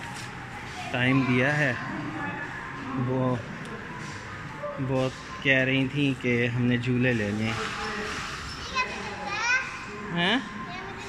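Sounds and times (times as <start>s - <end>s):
indoor hubbub: 0.0s - 11.0s.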